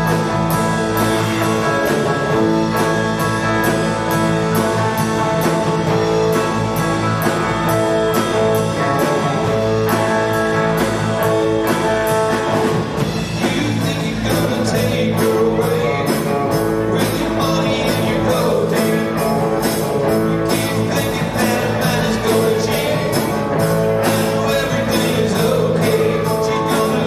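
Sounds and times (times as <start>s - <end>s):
bass: 0.0s - 27.0s
drum kit beat with cymbals: 0.0s - 27.0s
electric guitars playing chords: 0.0s - 27.0s.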